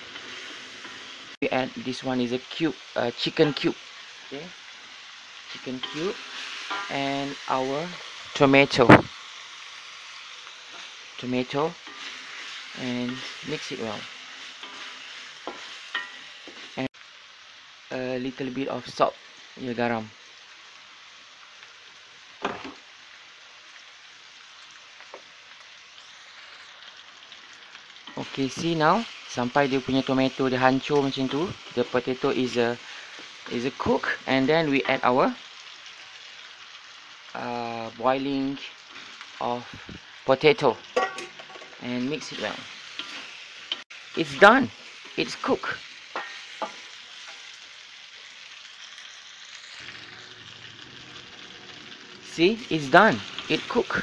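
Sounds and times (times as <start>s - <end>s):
food sizzling in a wok: 0.0s - 54.0s.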